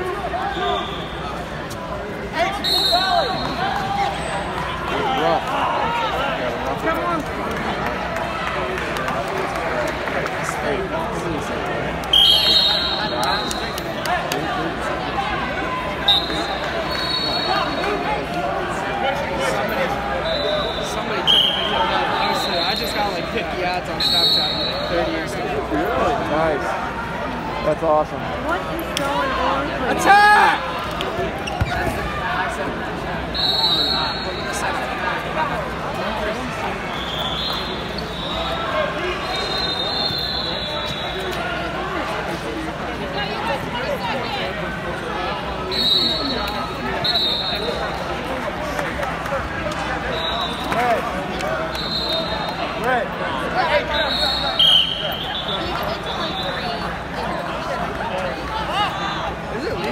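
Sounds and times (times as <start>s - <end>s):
background voices and chatter: 0.0s - 59.9s
crowd shouting in echoing gym: 0.0s - 59.9s
shrill whistle: 0.5s - 1.2s, 2.6s - 3.6s, 12.1s - 13.6s, 16.1s - 17.6s, 20.2s - 23.0s, 24.0s - 24.9s, 33.3s - 34.5s, 36.9s - 38.6s, 39.2s - 41.4s, 45.7s - 47.7s, 50.1s - 50.7s, 51.7s - 52.6s, 53.9s - 56.8s.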